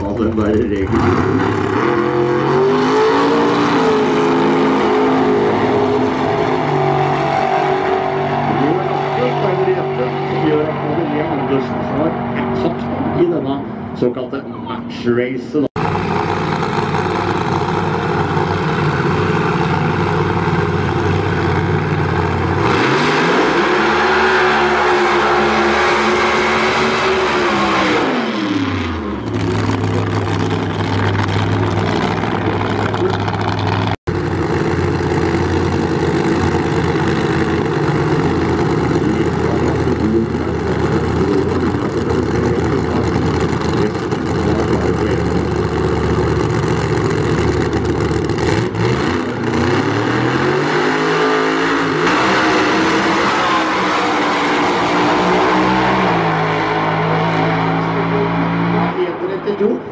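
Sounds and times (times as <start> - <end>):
drag racing car engine: 0.0 - 59.9.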